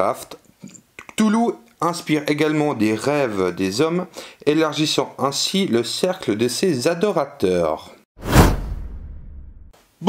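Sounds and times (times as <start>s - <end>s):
whoosh sound effect: 8.2s - 9.7s.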